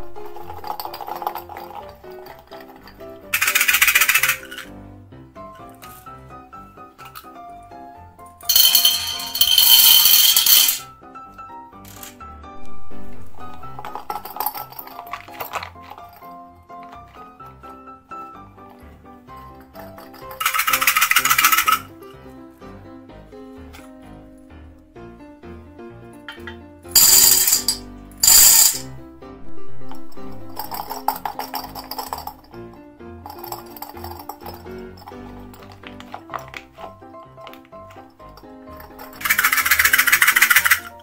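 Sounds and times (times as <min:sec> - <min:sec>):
beads rattling in glass jar: 0:00.0 - 0:04.7, 0:08.4 - 0:10.9, 0:11.8 - 0:17.7, 0:19.3 - 0:21.9, 0:26.9 - 0:29.0, 0:29.6 - 0:41.0
background music: 0:00.0 - 0:41.0.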